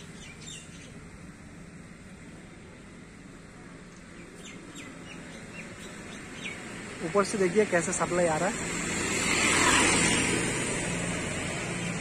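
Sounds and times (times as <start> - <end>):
small bird chirping: 0.0 - 1.0, 4.2 - 6.8
low outdoor background noise: 0.0 - 12.0.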